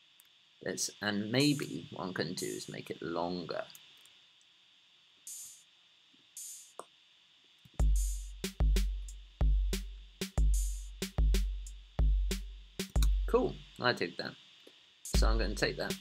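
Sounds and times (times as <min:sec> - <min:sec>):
open hi-hat hits: 0:01.3 - 0:02.9, 0:05.2 - 0:06.9, 0:07.8 - 0:16.0
hip-hop drum loop: 0:01.4 - 0:02.8, 0:05.2 - 0:05.7, 0:06.3 - 0:06.8, 0:07.8 - 0:14.3, 0:15.0 - 0:16.0.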